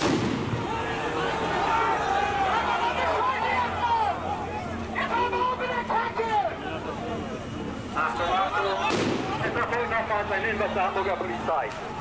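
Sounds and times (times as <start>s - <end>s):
firecracker bang: 0.0s - 0.8s, 8.8s - 9.5s
crowd shouting and chanting: 0.0s - 12.0s.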